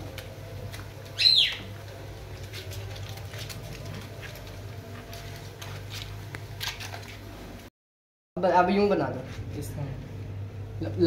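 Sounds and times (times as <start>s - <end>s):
low steady hum: 0.0s - 7.7s, 8.4s - 11.0s.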